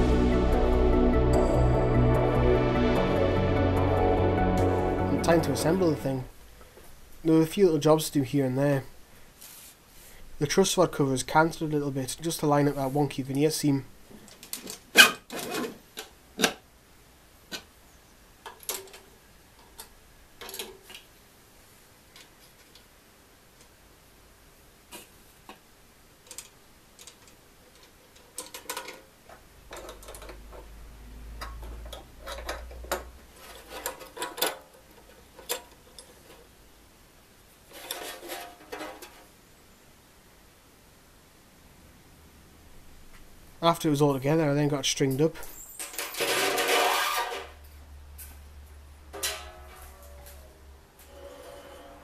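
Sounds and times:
low hum: 0.0 - 7.2.

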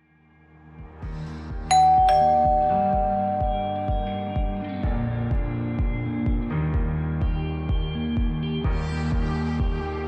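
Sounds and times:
background music with low beat: 0.9 - 10.0
ding-dong doorbell chime: 1.7 - 4.9.

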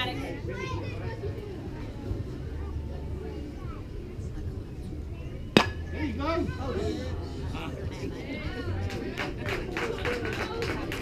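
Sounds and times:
bat cracking a ball: 5.6 - 6.0.

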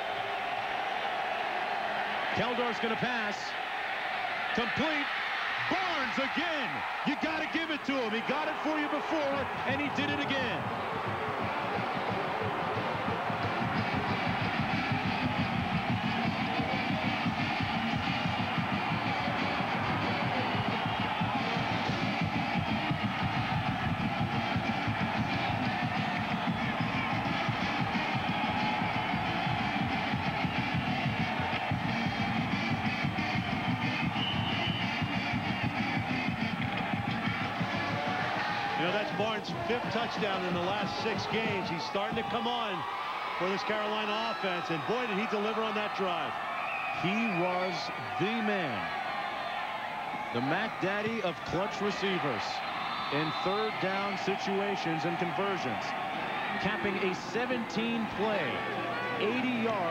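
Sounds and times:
stadium crowd din: 0.0 - 59.9
marching band playing: 8.8 - 42.6.

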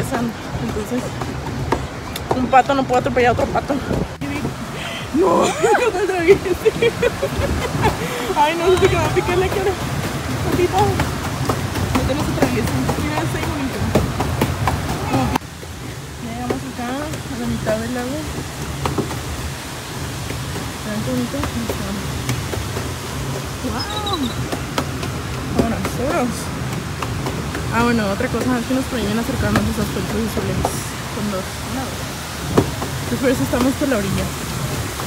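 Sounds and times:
lake water and wind noise: 0.0 - 35.0.

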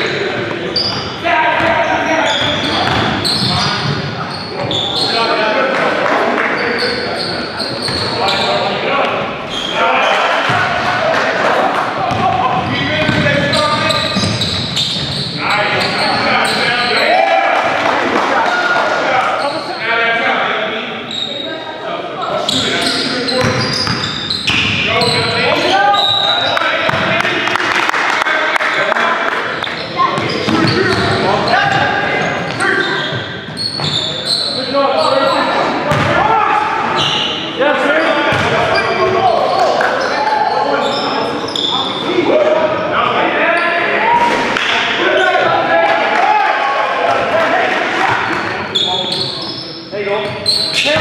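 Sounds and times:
shoe squeaks: 0.0 - 5.4, 6.5 - 8.8, 9.4 - 10.2, 13.3 - 17.1, 19.3 - 19.8, 21.0 - 26.5, 29.6 - 36.0, 36.9 - 42.1, 48.4 - 51.0
players' voices: 0.0 - 51.0
basketball bouncing on wooden floor: 2.4 - 4.0, 12.1 - 15.1, 35.9 - 36.2, 38.3 - 38.5
basketball bouncing on hardwood: 12.1 - 13.4, 35.9 - 36.1.

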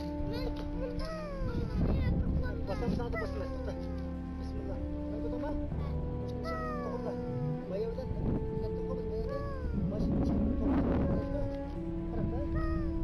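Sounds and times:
background music with long notes: 0.0 - 13.0.

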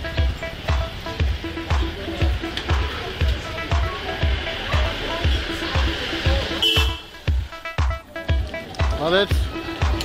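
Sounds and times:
background music with steady beat: 0.0 - 10.0
bass drum: 0.0 - 10.0.

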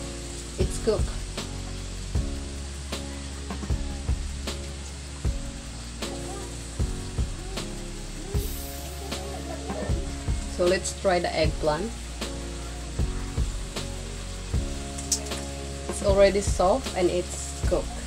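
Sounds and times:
background music: 0.0 - 18.0
vegetables frying in a wok: 0.0 - 18.0.

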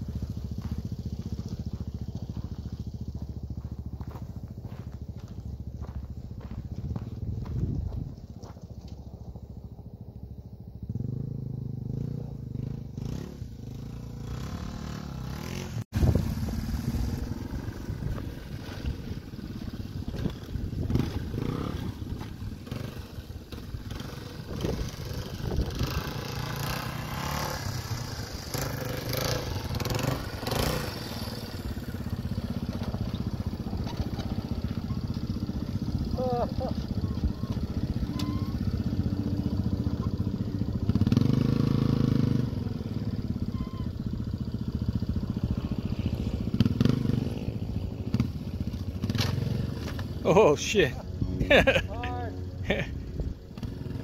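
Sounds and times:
motorcycle engine revving: 0.0 - 54.0.

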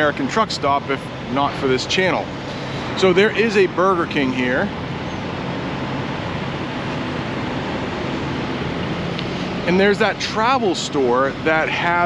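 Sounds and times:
diesel truck engines idling: 0.0 - 12.0.

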